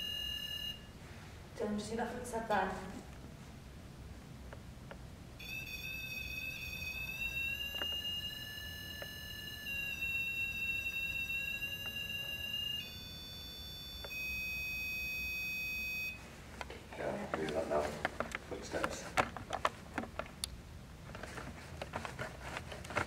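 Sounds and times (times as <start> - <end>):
electronic alarm tone: 0.0 - 0.9, 5.4 - 16.2.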